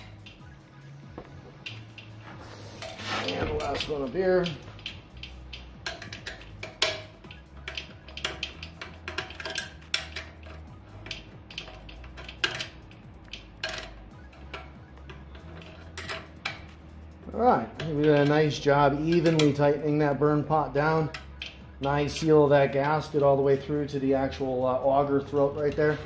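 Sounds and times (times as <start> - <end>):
wrench clinking against metal: 3.2 - 16.8, 17.8 - 19.8, 21.0 - 23.3.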